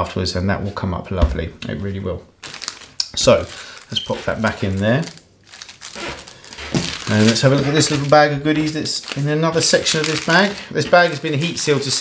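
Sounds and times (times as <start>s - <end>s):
plastic bag crinkling: 2.4s - 12.0s.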